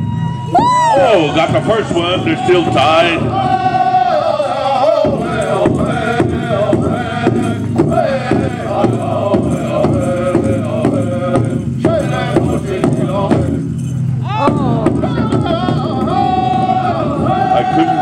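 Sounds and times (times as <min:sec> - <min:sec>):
big drum steady beat: 0:00.5 - 0:18.0
men chanting: 0:00.6 - 0:13.7, 0:14.3 - 0:18.0.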